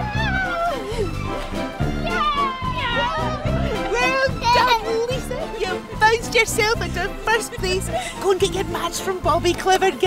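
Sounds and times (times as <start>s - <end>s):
people laughing: 0.0s - 5.8s
people calling out: 0.0s - 6.0s
background music: 0.0s - 10.0s.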